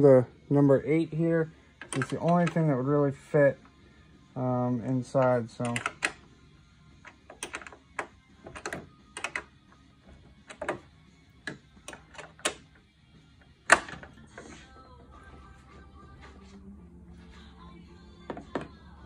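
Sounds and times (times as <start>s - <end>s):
wrench clicking on metal: 5.2s - 6.2s, 7.0s - 9.6s.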